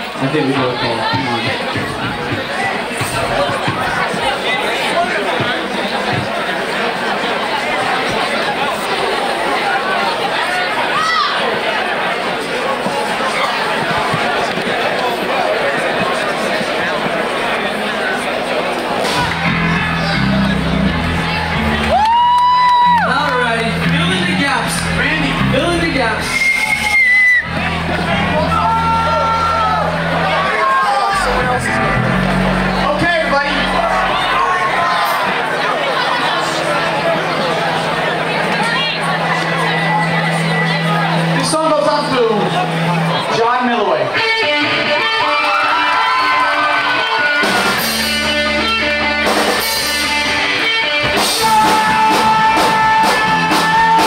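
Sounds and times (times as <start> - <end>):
live punk band: 0.0 - 6.8, 18.7 - 43.4, 44.1 - 54.0
electric guitar bending notes: 19.0 - 54.0
bass guitar low note: 19.1 - 35.4
high held tone: 19.2 - 35.4.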